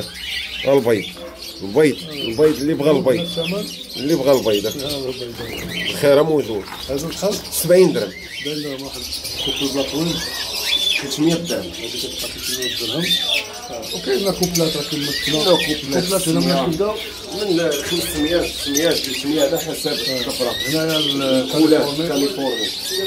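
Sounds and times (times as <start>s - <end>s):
people talking: 0.0s - 23.0s
songbirds and parakeets chirping: 0.0s - 23.0s.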